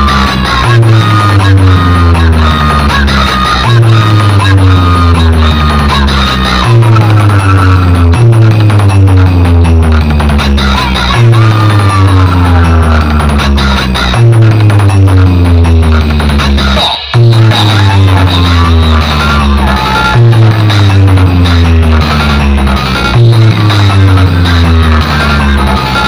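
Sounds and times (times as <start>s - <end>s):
falling-pitch tones: 0.0s - 26.0s
loud electronic dance music: 0.0s - 26.0s.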